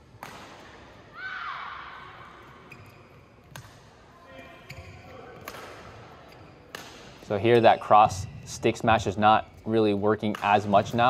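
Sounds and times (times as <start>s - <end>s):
racket hitting shuttlecock: 0.1s - 0.9s, 2.7s - 3.9s, 4.7s - 7.2s, 10.3s - 10.6s.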